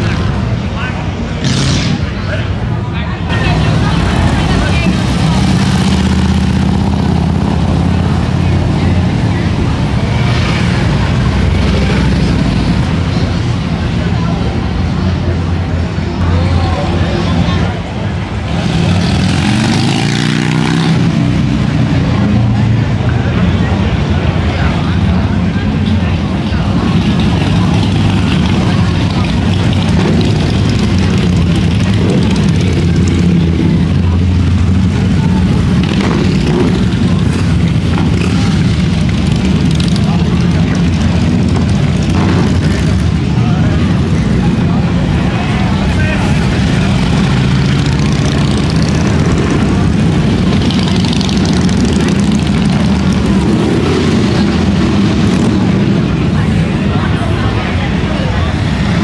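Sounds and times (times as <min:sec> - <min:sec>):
motorcycles riding past: 0:03.3 - 0:59.0.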